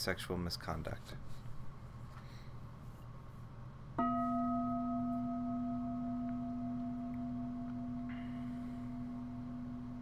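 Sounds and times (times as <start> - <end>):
bowl bell ringing: 4.0 - 10.0.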